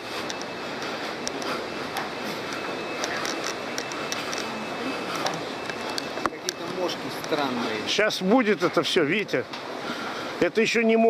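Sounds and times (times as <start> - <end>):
footsteps on catwalk: 0.0 - 7.9.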